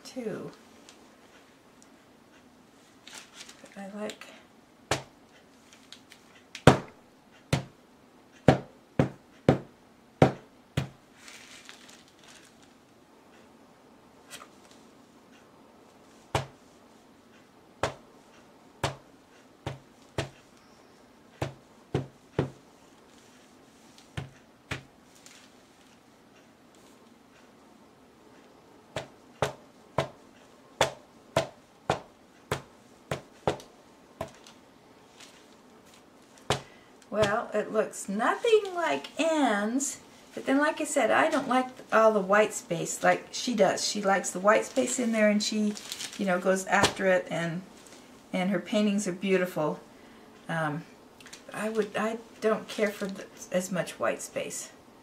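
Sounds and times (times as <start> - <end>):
soft rustle: 0.0 - 4.6, 5.2 - 6.7, 10.8 - 13.6, 14.2 - 54.8
rubber mallet thudding on wet paint: 4.9 - 5.1, 6.7 - 6.9, 7.5 - 7.8, 8.5 - 11.0, 16.4 - 16.6, 17.8 - 18.0, 18.8 - 19.0, 19.7 - 20.4, 21.4 - 22.6, 24.2 - 24.9, 29.0 - 30.2, 30.8 - 34.4.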